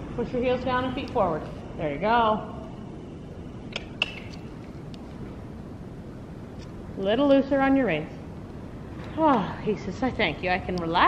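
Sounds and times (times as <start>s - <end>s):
wind buffeting metal building: 0.0s - 11.0s.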